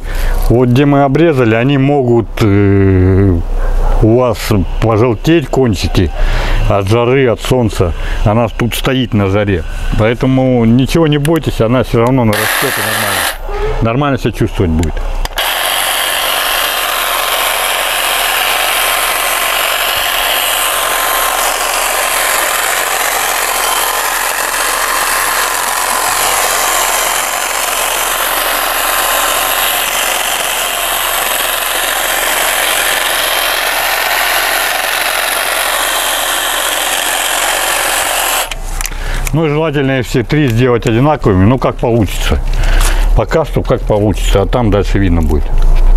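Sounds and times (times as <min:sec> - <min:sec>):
hedge trimmer cutting foliage: 0:12.0 - 0:13.5, 0:14.8 - 0:39.4, 0:42.1 - 0:43.2.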